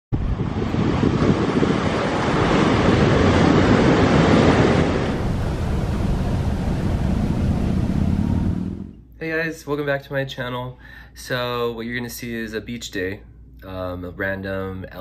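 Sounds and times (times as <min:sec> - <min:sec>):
wind buffeting microphone: 0:00.1 - 0:09.0
waves breaking on beach: 0:00.4 - 0:08.8.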